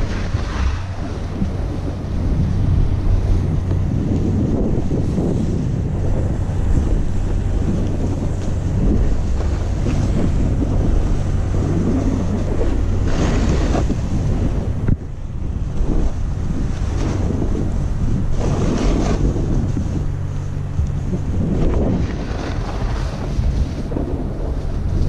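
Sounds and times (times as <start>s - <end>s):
snowboard edge scraping snow: 0.0s - 2.5s, 6.6s - 14.6s, 15.8s - 20.1s, 21.0s - 25.0s
wind buffeting microphone: 0.0s - 25.0s.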